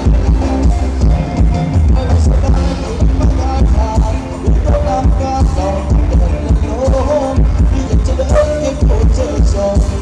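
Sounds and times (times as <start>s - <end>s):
live band dance music over pa: 0.0s - 10.0s.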